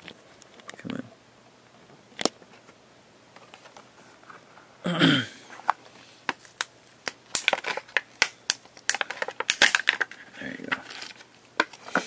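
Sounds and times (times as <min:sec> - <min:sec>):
plastic pieces clicking and crinkling: 0:06.3 - 0:12.0.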